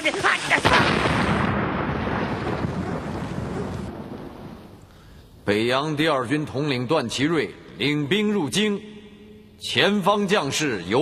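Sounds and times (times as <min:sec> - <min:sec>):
explosion rumble: 0:00.5 - 0:04.8.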